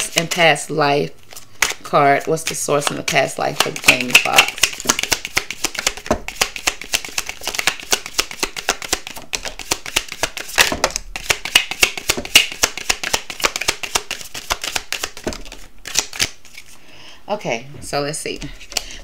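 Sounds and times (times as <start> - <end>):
cards being shuffled: 1.2 - 16.8.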